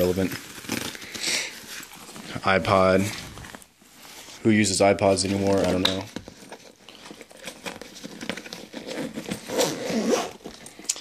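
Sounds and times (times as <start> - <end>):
backpack fabric rustling: 0.0 - 4.4, 5.0 - 10.9
zipper and buckle clicks: 7.2 - 11.0.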